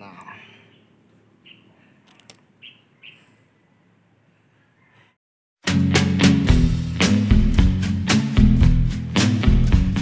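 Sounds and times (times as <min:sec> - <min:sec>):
bird chirping: 0:00.4 - 0:05.2.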